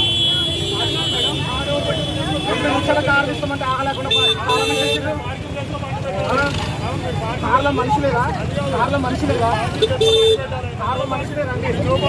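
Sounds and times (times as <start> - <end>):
people arguing: 0.0 - 12.0
traffic noise: 0.0 - 12.0.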